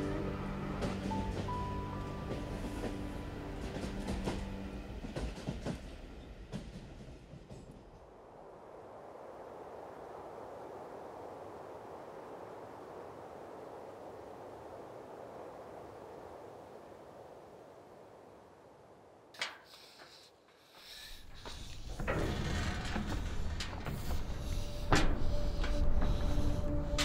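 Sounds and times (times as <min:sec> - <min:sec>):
music: 0:00.0 - 0:06.0, 0:21.4 - 0:27.0
train rushing noise: 0:00.0 - 0:08.2, 0:19.4 - 0:27.0
train wheel clacks: 0:00.3 - 0:08.0, 0:19.4 - 0:27.0.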